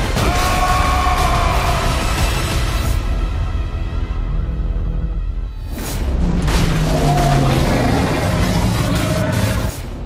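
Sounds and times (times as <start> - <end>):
film trailer score: 0.0 - 10.0
rumbling sound effects: 5.6 - 10.0.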